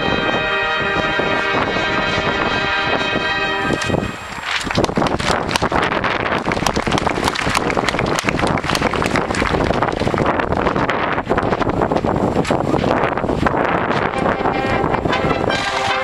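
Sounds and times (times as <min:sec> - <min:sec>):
wind buffeting microphone: 0:00.0 - 0:16.0
marching band playing: 0:14.1 - 0:16.0.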